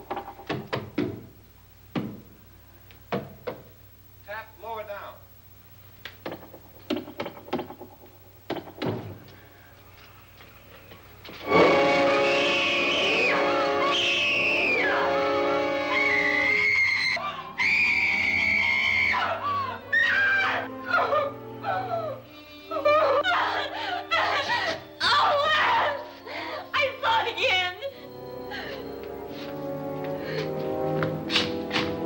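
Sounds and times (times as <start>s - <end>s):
knocks on a wall: 1.9s - 2.2s
orchestral horror stinger: 11.4s - 20.8s
woman screaming: 12.3s - 27.9s.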